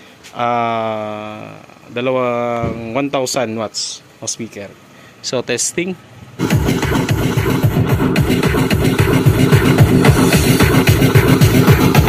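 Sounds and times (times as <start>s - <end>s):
loud electronic dance music: 6.4s - 12.0s.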